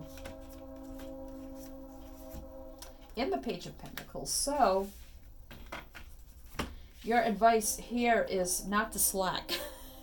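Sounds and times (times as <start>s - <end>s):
sustained tone of held notes: 0.0s - 5.2s.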